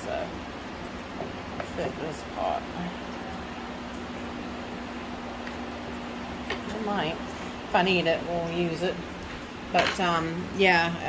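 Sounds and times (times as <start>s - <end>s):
mechanical room hum: 0.0s - 11.0s.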